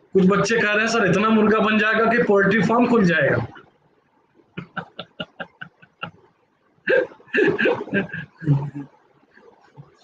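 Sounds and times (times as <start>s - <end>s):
man laughing: 4.6s - 6.2s, 6.9s - 8.7s.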